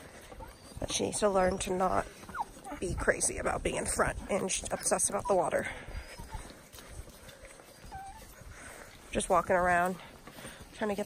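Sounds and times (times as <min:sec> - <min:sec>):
footsteps on gravel: 0:00.0 - 0:11.0.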